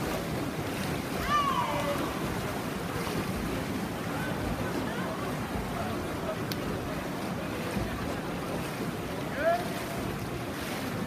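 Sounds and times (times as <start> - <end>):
indoor pool hubbub: 0.0 - 11.0
swimmers splashing: 0.0 - 11.0.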